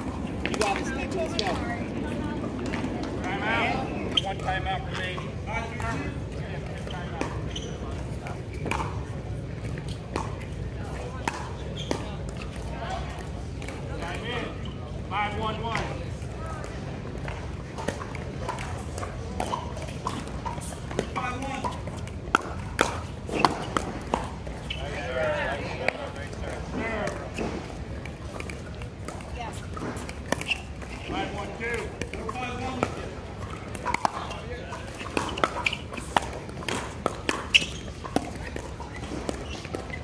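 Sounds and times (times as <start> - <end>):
paddles hitting plastic balls: 25.8 - 40.0.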